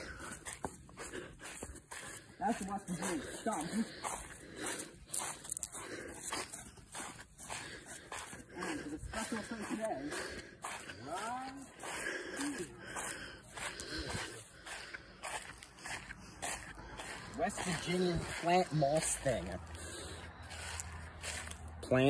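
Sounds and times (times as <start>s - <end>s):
footsteps through grass and leaves: 0.0s - 22.0s.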